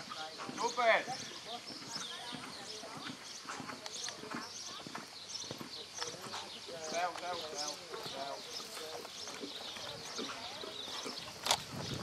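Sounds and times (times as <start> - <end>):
horse cantering on sand: 0.0 - 12.0
voices talking: 0.0 - 12.0.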